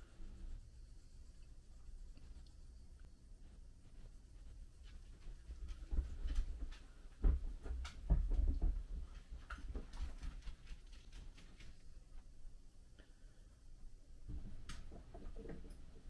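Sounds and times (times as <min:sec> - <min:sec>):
cloth rubbing on a steel blade: 0:00.0 - 0:05.8.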